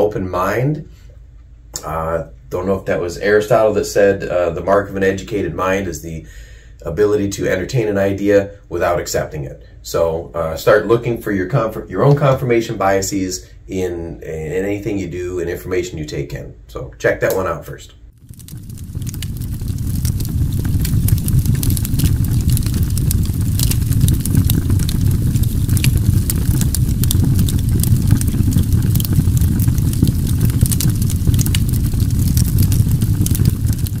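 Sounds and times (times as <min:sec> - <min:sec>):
steady low rumble: 0:18.0 - 0:34.0
scattered crackles: 0:18.1 - 0:34.0.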